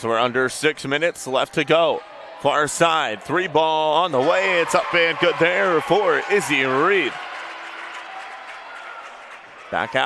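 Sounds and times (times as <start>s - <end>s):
crowd applause: 4.1s - 10.0s.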